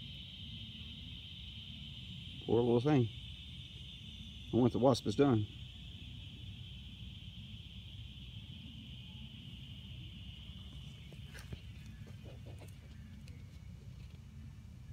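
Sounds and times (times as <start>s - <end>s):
high-pitched insect drone: 0.0s - 14.9s.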